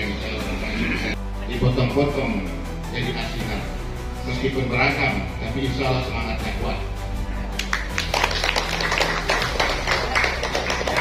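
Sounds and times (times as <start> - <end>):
background music: 0.0 - 11.0
people clapping: 7.6 - 11.0.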